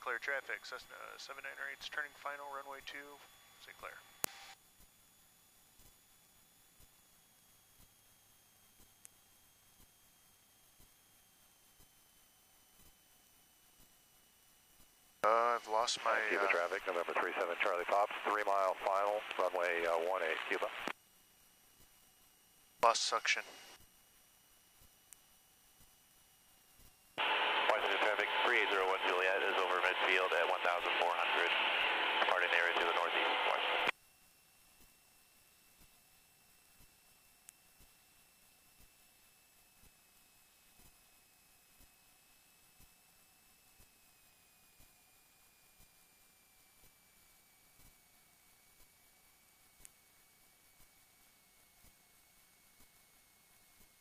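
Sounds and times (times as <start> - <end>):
radio click with short hiss: 16.0 - 20.9, 27.2 - 33.9.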